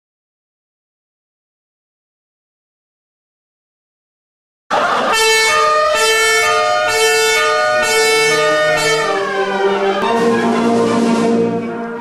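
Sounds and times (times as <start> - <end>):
pitch glide: 4.8 - 12.0
wind band playing sustained chords: 4.8 - 12.0.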